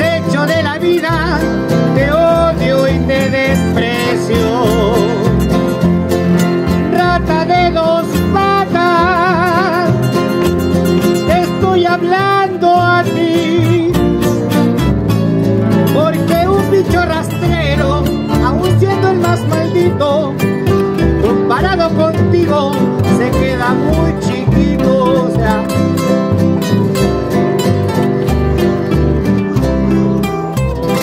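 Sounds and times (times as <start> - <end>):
lead melody with wide vibrato: 0.0 - 31.0
plucked double bass: 0.0 - 31.0
strummed acoustic guitar rhythm: 0.0 - 31.0.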